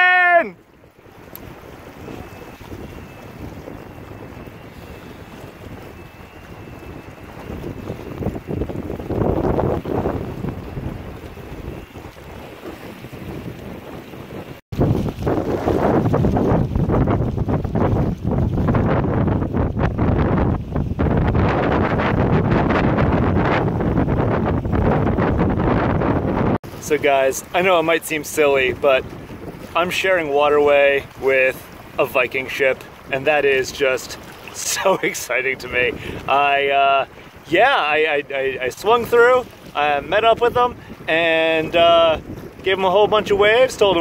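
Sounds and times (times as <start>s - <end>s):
choppy river water: 0.0s - 44.0s
wind buffeting microphone: 0.0s - 44.0s.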